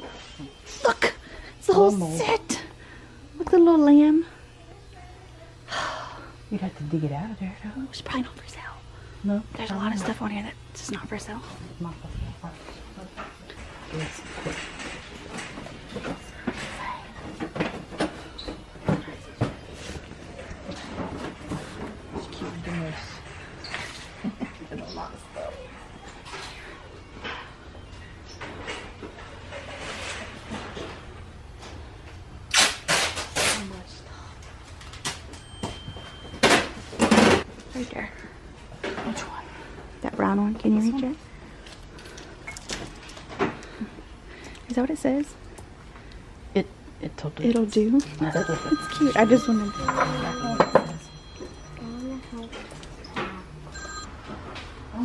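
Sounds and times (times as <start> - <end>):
steady low hum: 0.0 - 55.0
electronic ringing tone: 48.2 - 54.2.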